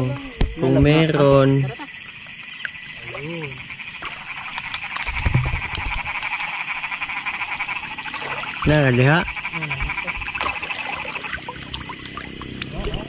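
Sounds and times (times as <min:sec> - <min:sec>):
frogs calling: 0:00.0 - 0:13.0.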